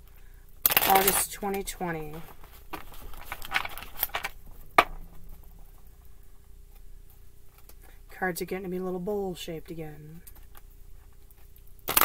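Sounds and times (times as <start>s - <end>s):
cards shuffling: 0.6s - 4.9s.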